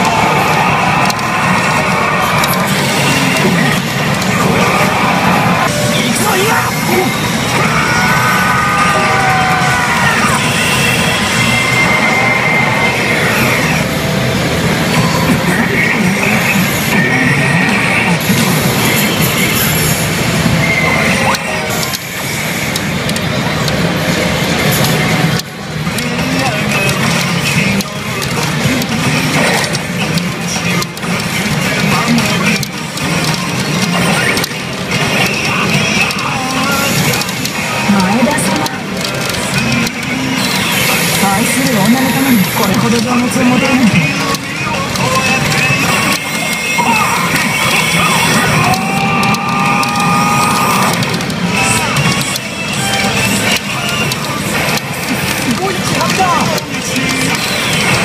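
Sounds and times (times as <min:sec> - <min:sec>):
pachinko machine music: 0:00.0 - 0:58.0.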